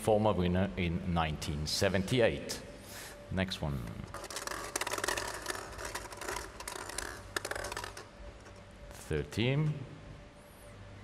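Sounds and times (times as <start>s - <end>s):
plastic balls rattling in glass bowl: 4.1s - 8.6s.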